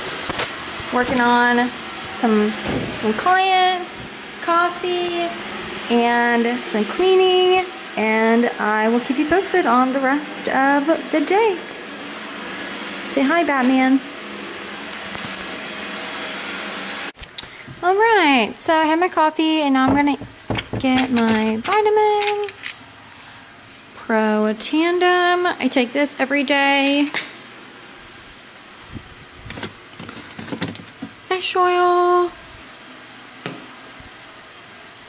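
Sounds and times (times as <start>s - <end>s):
vacuum cleaner running: 0.0s - 35.0s.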